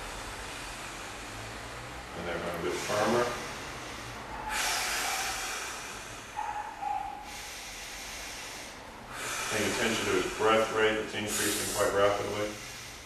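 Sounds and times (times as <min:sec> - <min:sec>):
man breathing heavily: 0:00.0 - 0:13.0.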